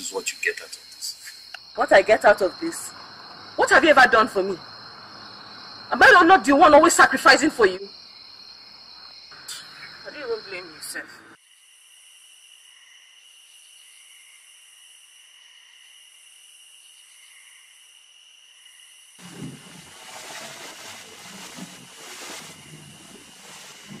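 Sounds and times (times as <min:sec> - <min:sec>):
night insects chirping: 0:00.0 - 0:24.0
rumbling noise: 0:19.2 - 0:24.0.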